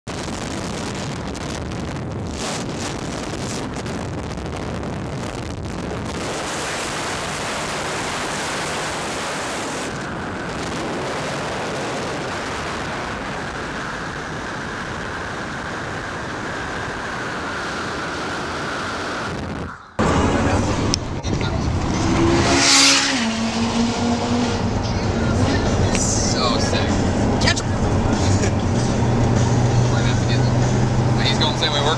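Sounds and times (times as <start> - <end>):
in-car road noise: 0.0 - 31.9
cars driving on a freeway: 0.2 - 31.9
low engine hum: 8.9 - 31.9
vehicle passing close: 20.0 - 31.9.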